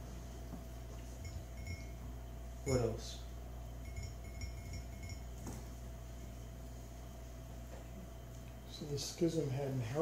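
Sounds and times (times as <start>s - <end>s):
faint high ringing tones: 0.0s - 10.0s
steady low hum: 0.0s - 10.0s.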